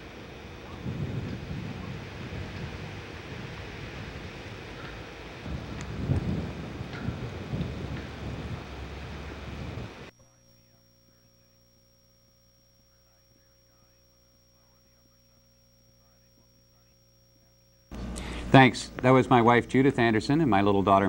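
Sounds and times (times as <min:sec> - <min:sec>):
wind buffeting microphone: 0:00.0 - 0:10.1.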